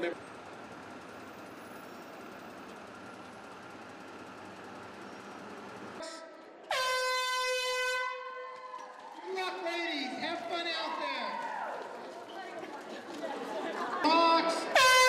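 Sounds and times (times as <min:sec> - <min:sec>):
background hubbub: 0:05.9 - 0:15.0
loud air horn blast: 0:06.0 - 0:08.4, 0:14.7 - 0:15.0.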